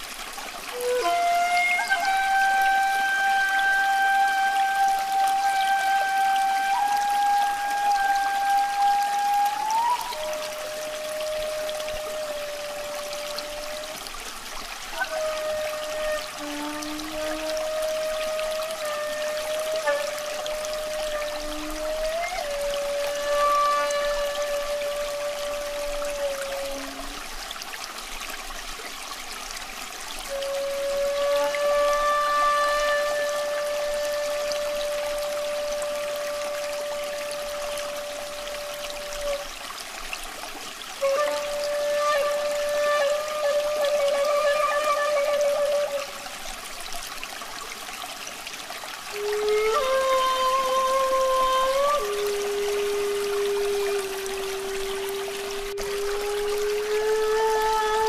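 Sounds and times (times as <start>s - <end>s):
running water trickling: 0.0s - 58.0s
flute-like melody: 0.6s - 27.4s, 30.2s - 47.9s, 48.6s - 58.0s.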